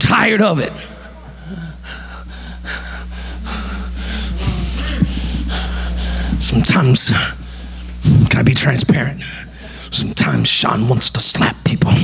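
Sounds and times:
steady low hum: 0:00.0 - 0:12.0
man breathing hard: 0:00.8 - 0:06.4, 0:07.4 - 0:08.0, 0:09.3 - 0:09.9.

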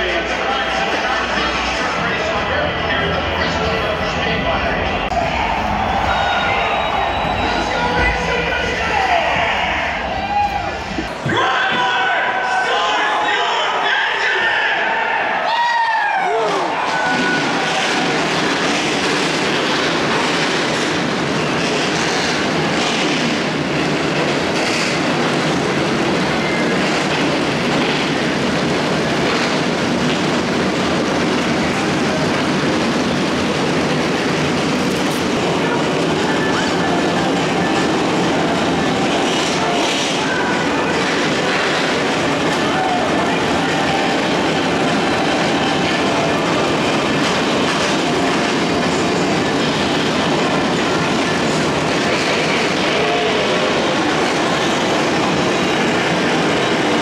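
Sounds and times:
race car engines running: 0:00.0 - 0:13.5, 0:16.2 - 0:57.0.

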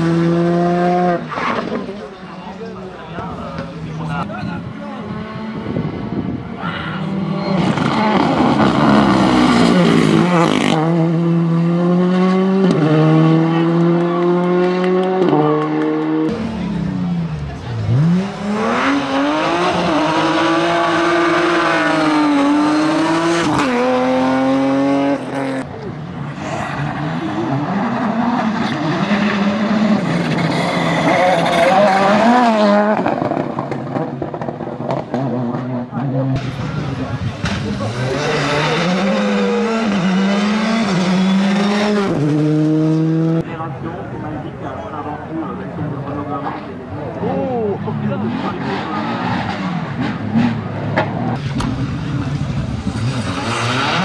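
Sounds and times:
rally car engine upshifting: 0:00.0 - 0:43.5, 0:45.6 - 0:54.0.

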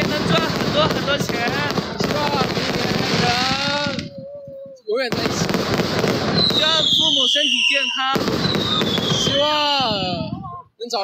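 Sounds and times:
fireworks crackling and popping: 0:00.0 - 0:11.0.

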